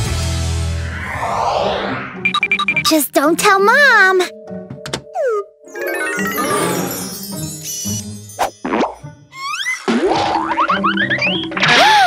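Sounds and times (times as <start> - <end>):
background music: 2.2 - 11.5.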